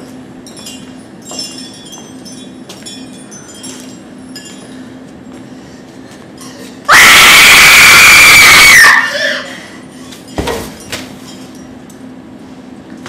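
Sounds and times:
high tinkling chimes: 0:00.4 - 0:04.9
woman screaming: 0:06.9 - 0:09.6.

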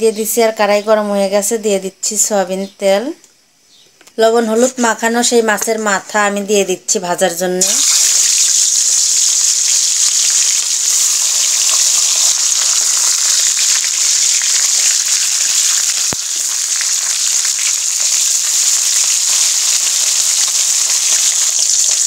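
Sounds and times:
fish frying in hot oil: 0:07.6 - 0:22.0.

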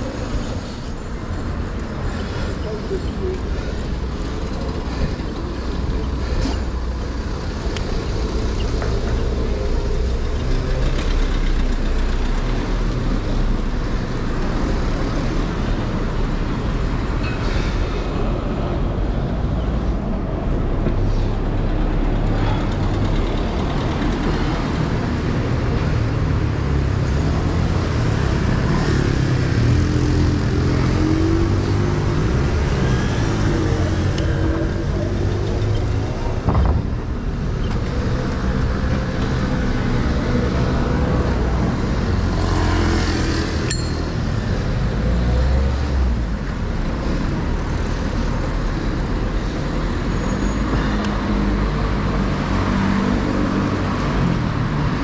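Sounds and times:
car and truck engines: 0:00.0 - 0:55.0
low traffic rumble: 0:00.0 - 0:55.0.

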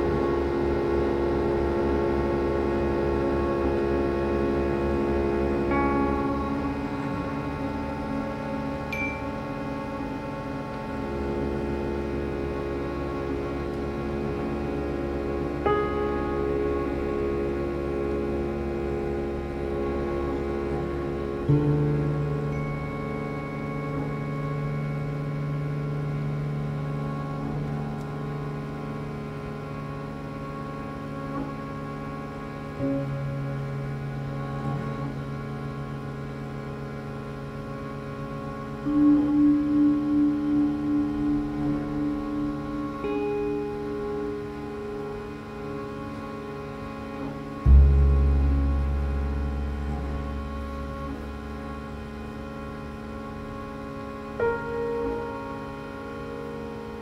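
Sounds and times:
deep low tone: 0:00.0 - 0:57.0
ensemble drone music: 0:00.0 - 0:57.0.

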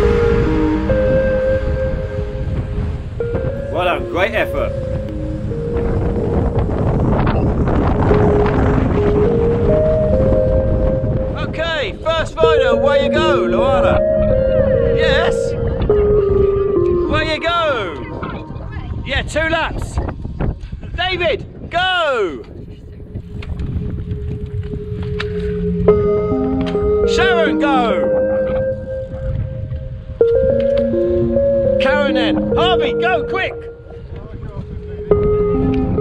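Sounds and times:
background music of held notes: 0:00.0 - 0:19.8, 0:23.2 - 0:36.0
wind buffeting microphone: 0:00.0 - 0:36.0.

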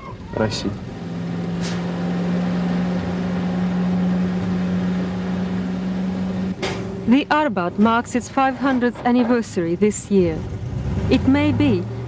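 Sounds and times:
crane engine running: 0:00.0 - 0:12.0.

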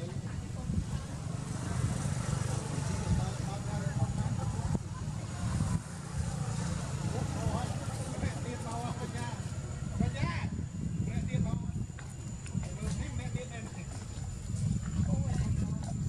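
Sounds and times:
faint indistinct voices: 0:00.0 - 0:16.0
steady low rumble: 0:00.0 - 0:16.0.

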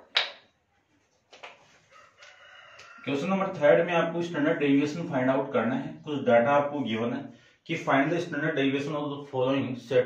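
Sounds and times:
rooster crowing faintly: 0:01.9 - 0:03.6.

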